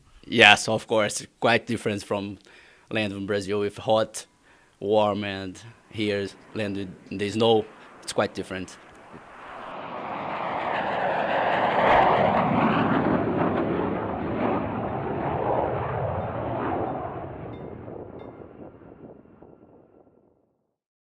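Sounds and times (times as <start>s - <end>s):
jet engine passing: 5.6s - 20.2s.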